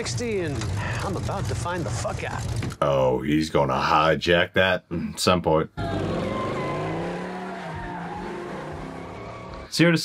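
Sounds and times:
car engine revving hard: 5.8 - 9.6.

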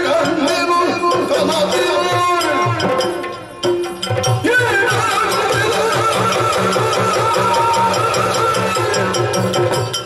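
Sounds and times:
drums beating steady rhythm: 0.0 - 10.0.

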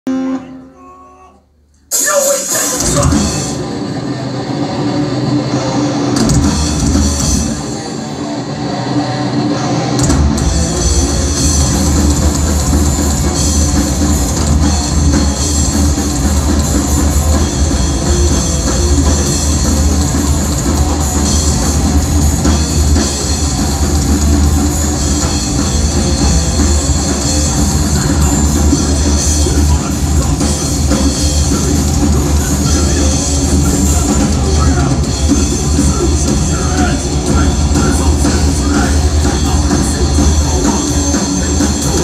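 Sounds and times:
distorted electric guitars: 0.1 - 1.0, 1.8 - 42.0
drum kit: 1.8 - 8.4, 9.5 - 42.0.

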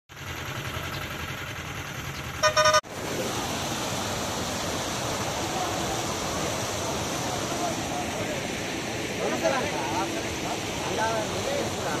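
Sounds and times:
floodwater rushing over road: 0.1 - 12.0
road noise rumble: 0.1 - 12.0
vehicle horn honk: 2.4 - 2.9.

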